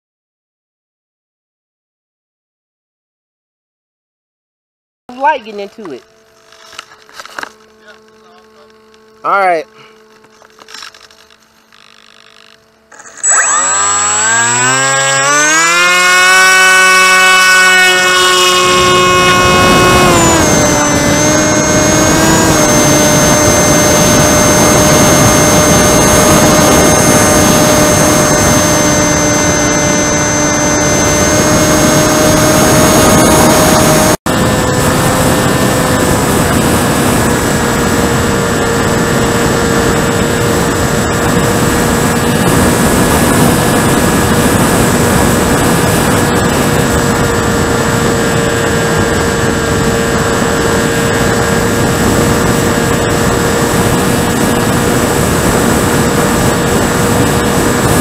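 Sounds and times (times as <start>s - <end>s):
electric motor propeller whine: 5.1s - 58.0s.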